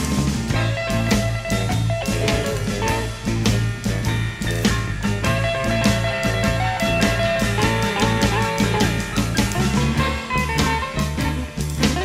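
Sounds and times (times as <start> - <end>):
bass: 0.0 - 12.0
drum kit steady beat: 0.0 - 12.0
electric guitar: 0.0 - 12.0.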